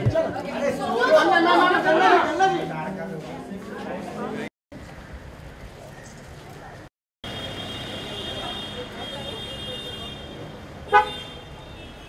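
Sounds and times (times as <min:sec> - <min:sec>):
street and crowd noise: 0:00.0 - 0:12.0.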